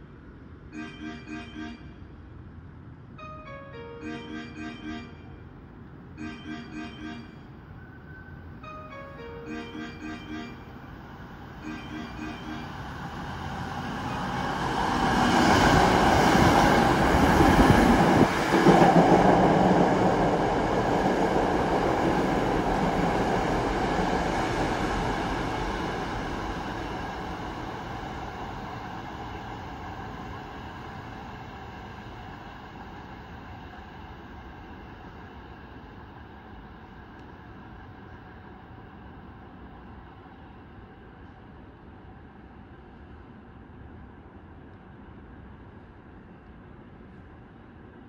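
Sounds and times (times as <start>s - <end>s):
electric train passing at speed: 0.0s - 48.0s.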